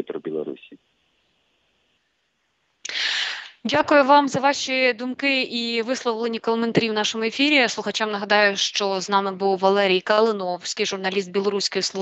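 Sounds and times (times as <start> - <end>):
sharp in-breath into a microphone: 2.9 - 3.6.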